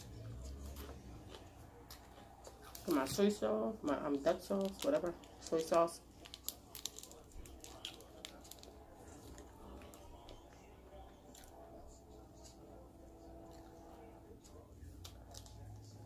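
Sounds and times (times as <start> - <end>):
plastic packet crinkling: 4.3 - 10.4.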